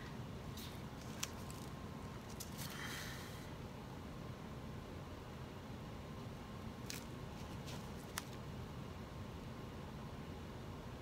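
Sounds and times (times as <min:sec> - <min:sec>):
soft rustle: 0:00.5 - 0:03.0, 0:06.8 - 0:08.4.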